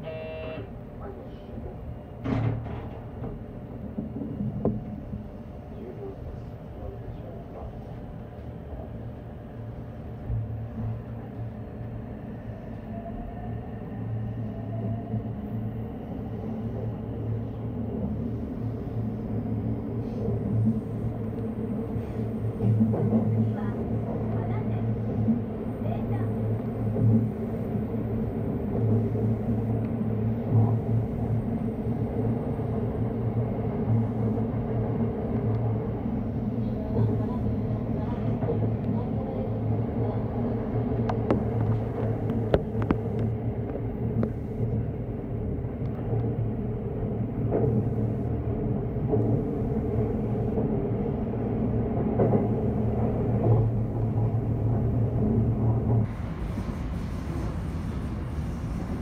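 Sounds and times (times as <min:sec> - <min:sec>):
constant low hum: 0:00.0 - 0:59.0
electric train rumbling on track: 0:00.0 - 0:59.0.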